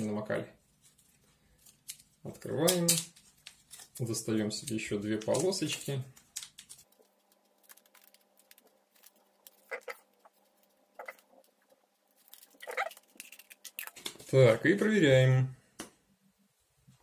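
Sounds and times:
foil packets crinkling: 0.9s - 14.5s.

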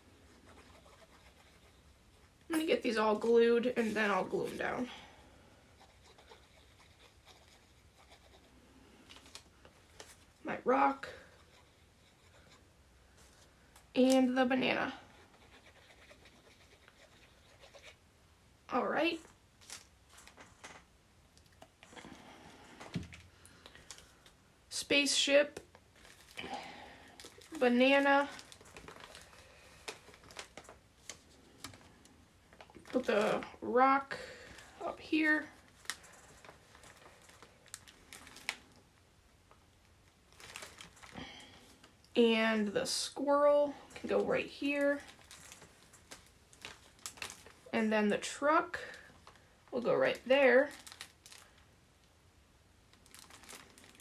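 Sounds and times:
paper rustling: 27.2s - 33.4s.

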